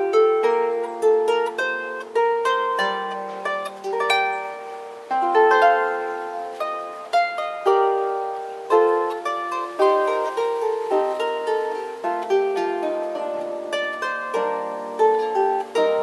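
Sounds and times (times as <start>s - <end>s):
harp plucked melody: 0.0s - 16.0s.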